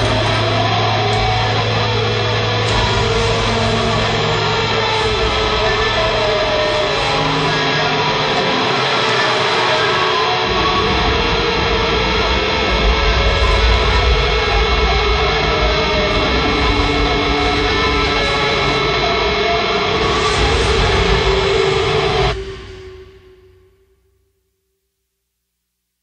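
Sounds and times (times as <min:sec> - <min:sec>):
distorted hardcore band music: 0:00.0 - 0:23.9.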